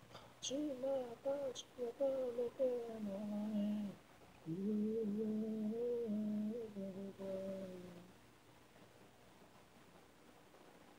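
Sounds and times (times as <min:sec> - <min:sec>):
faint hiss: 0:00.0 - 0:10.9
woman singing: 0:00.4 - 0:08.1.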